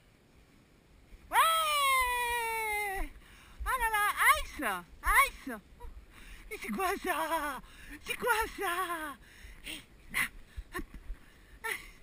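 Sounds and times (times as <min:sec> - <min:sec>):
woman's long wordless call: 0:01.3 - 0:09.2.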